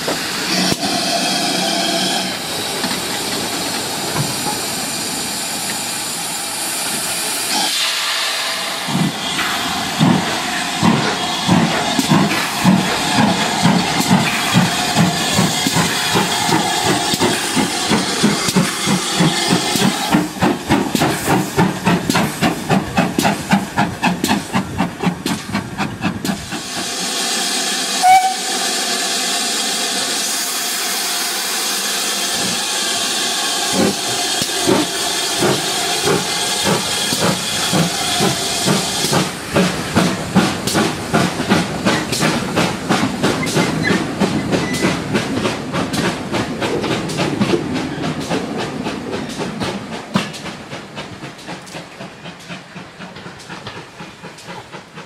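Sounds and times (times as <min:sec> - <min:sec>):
steam hissing: 0:00.0 - 0:55.0
steam locomotive exhaust beats: 0:00.0 - 0:55.0
train whistle: 0:27.8 - 0:29.2.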